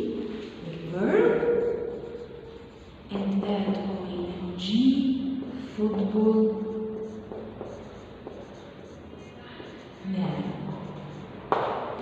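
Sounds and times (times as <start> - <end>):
marker scratching on whiteboard: 0.0 - 12.0.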